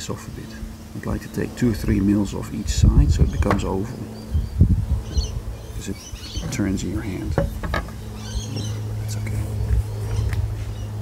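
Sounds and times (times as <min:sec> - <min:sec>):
low rumbling microphone noise: 0:00.0 - 0:11.0.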